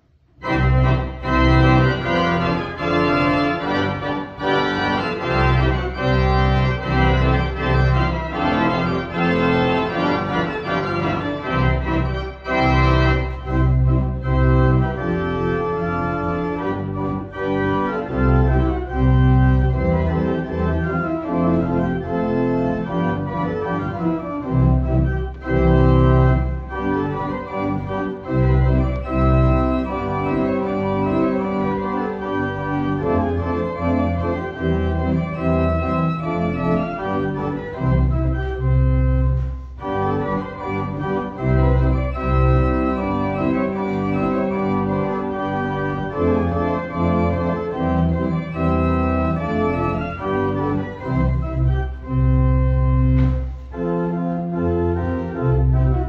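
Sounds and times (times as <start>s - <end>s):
pipe organ playing polka: 0.0s - 56.0s.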